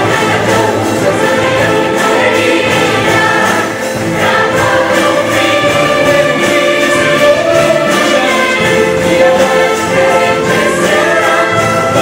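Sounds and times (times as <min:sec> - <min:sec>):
band accompaniment: 0:00.0 - 0:12.0
choir singing gospel music: 0:00.0 - 0:12.0.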